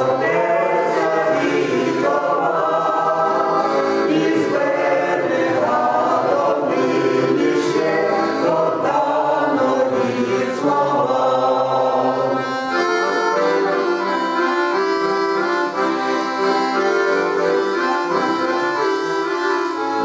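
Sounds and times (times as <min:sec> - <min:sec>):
mixed choir singing folk song: 0:00.0 - 0:14.8
accordion: 0:00.0 - 0:20.0.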